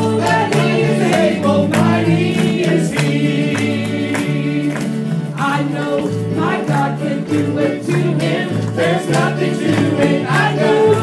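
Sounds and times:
vocal group singing gospel: 0.0s - 11.0s.

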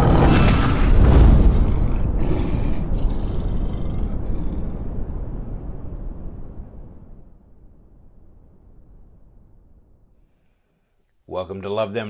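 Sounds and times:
low cinematic rumble: 0.0s - 10.2s.

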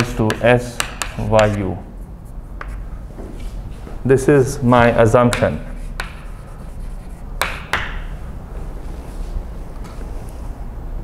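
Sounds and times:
chalk tapping on chalkboard: 0.0s - 1.7s, 2.6s - 2.9s, 5.2s - 8.1s
low room hum: 0.0s - 11.0s.

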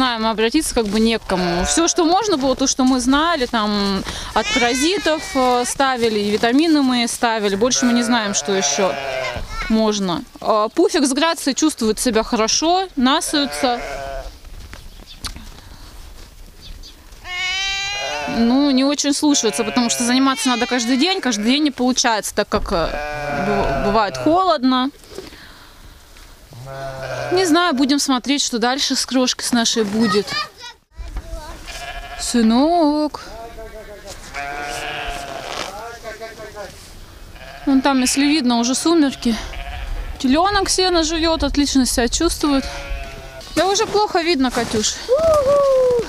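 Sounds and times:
sheep bleating: 1.3s - 2.4s, 4.4s - 5.8s, 7.6s - 9.7s, 13.1s - 14.3s, 17.2s - 21.7s, 22.8s - 24.4s, 26.6s - 27.9s, 31.6s - 32.4s, 33.3s - 36.5s, 37.4s - 40.3s, 42.4s - 43.5s.

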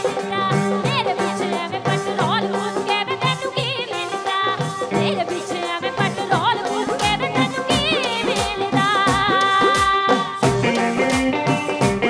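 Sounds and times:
drum beat: 0.0s - 12.0s.

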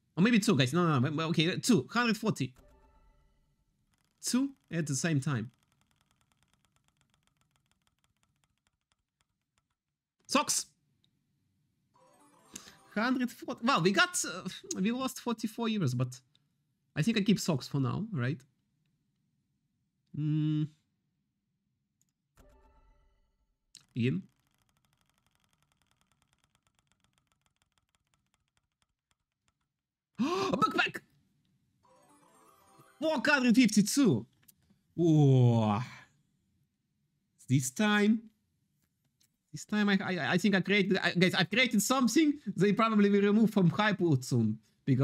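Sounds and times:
faint spinner reel ticking: 4.0s - 9.9s, 23.8s - 29.8s.

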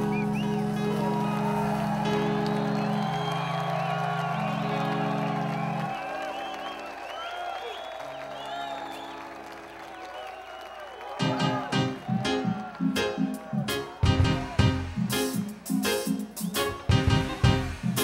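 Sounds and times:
audience cheering and whooping: 0.0s - 14.8s
reggae band holding a chord: 11.2s - 18.0s.

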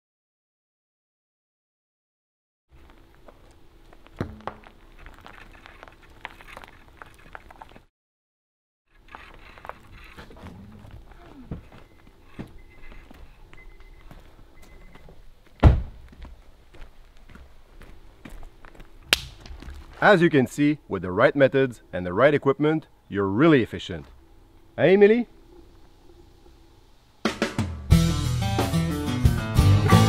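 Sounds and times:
rope creaking through pulley: 4.5s - 7.8s, 8.9s - 13.1s
loud thump: 15.6s - 16.0s.

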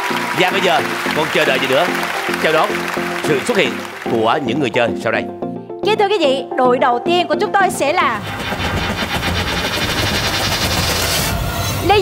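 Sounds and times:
low rumble: 8.2s - 12.0s
rapid drumroll: 8.2s - 12.0s.

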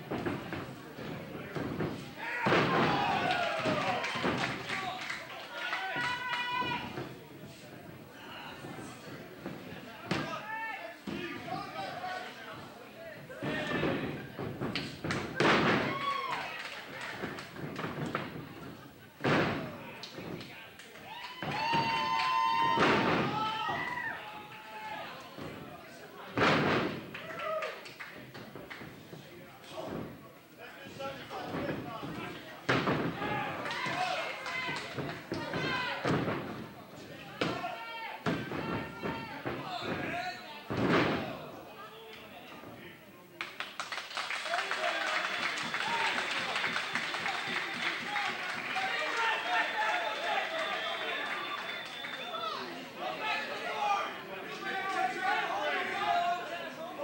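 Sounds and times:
bodies slamming onto wrestling mat: 1.6s - 3.3s, 13.5s - 16.0s
crowd shouting: 2.2s - 4.4s
fans shouting: 2.2s - 7.1s, 21.0s - 25.3s, 33.1s - 36.1s, 44.5s - 57.0s
crowd clapping: 3.2s - 6.6s, 16.1s - 18.3s, 27.1s - 28.9s, 43.4s - 52.8s.

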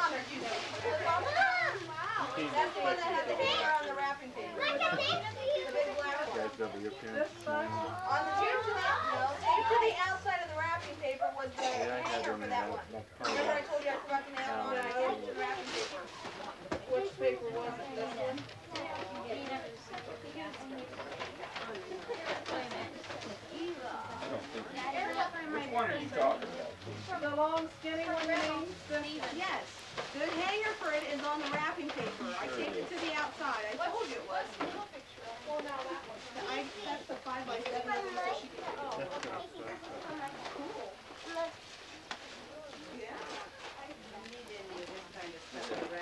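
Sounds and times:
wrapping paper rustling: 0.0s - 11.6s, 12.2s - 46.0s
family chatter: 0.0s - 46.0s
high-pitched children's voices: 0.8s - 12.0s, 34.6s - 41.8s.

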